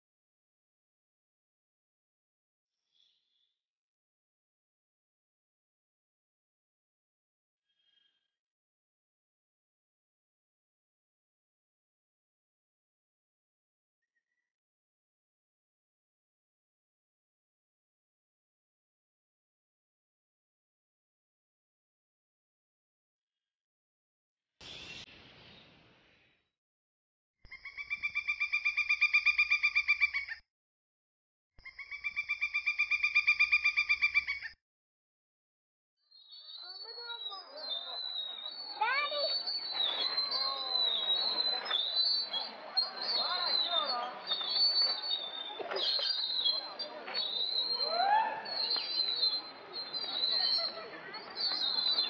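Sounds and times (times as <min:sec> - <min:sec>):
bird rapid pulsed trill: 0:31.6 - 0:34.6
faint distant voices: 0:36.8 - 0:52.0.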